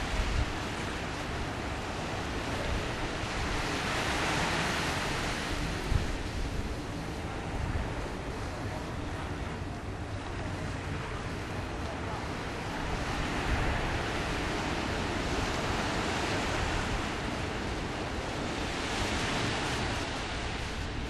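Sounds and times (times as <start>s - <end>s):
small waves on sandy beach: 0.0s - 21.0s
wind buffeting microphone: 0.0s - 21.0s.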